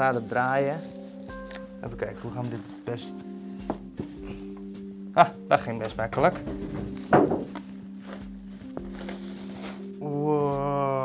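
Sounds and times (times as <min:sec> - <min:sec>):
plastic bag rustling: 0:00.0 - 0:05.1, 0:06.1 - 0:10.6
background music with held notes: 0:00.0 - 0:11.0.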